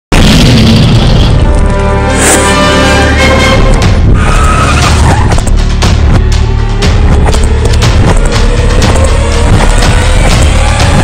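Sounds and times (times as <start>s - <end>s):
cinematic boom hit: 0.2s - 1.6s
music: 0.2s - 11.0s.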